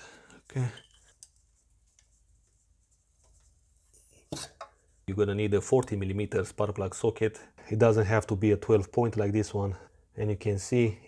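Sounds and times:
faint plastic clicks and rubbing: 0:00.3 - 0:04.0.

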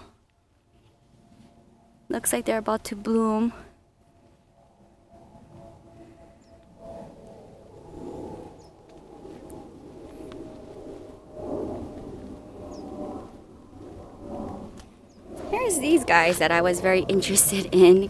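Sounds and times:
faint outdoor background noise: 0:00.0 - 0:18.0.

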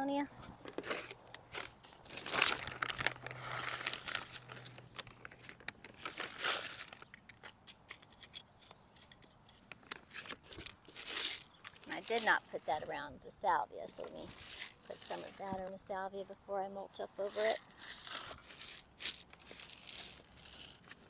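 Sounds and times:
trowel digging in soil: 0:00.4 - 0:13.4, 0:14.0 - 0:16.3, 0:17.0 - 0:21.0.

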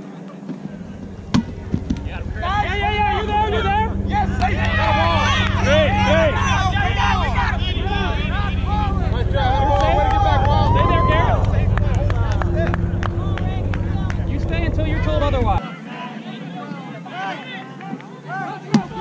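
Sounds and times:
players calling and shouting: 0:00.0 - 0:19.0.

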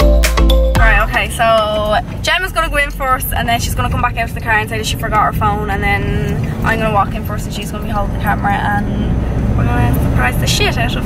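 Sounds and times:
woman talking: 0:00.8 - 0:08.9, 0:09.6 - 0:11.0
car rumble: 0:00.8 - 0:11.0.

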